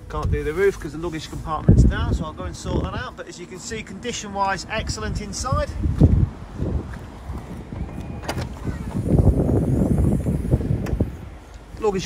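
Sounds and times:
wind noise on microphone: 0.0 - 3.2, 4.6 - 12.0.

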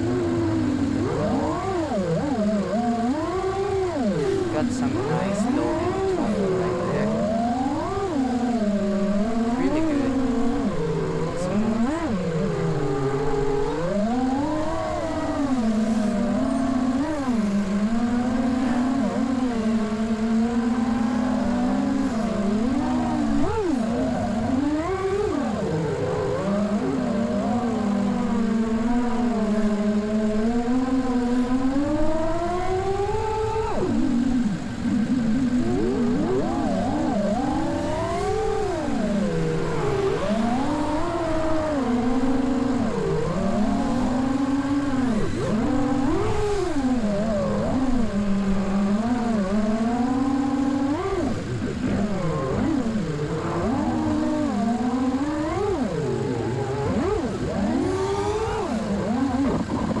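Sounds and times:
quadcopter motors whining: 0.0 - 60.0.

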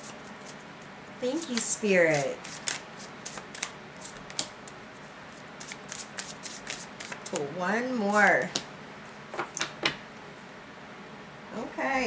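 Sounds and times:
cards being shuffled: 1.4 - 4.5, 5.6 - 7.5.

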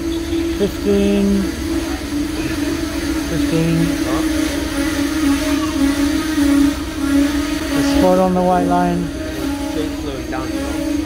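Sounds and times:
low humming tone: 0.0 - 11.0
train rolling slowly: 0.0 - 11.0
people's voices: 0.2 - 11.0.

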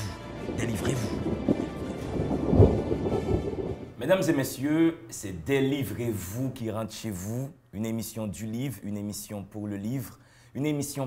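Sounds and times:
deep thunder-like rumble: 0.1 - 4.0
heavy low booms: 0.1 - 4.0.

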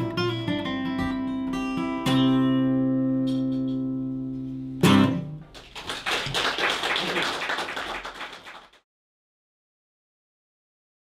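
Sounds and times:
loud guitar strum: 4.8 - 5.4
audience applause: 5.5 - 8.8.

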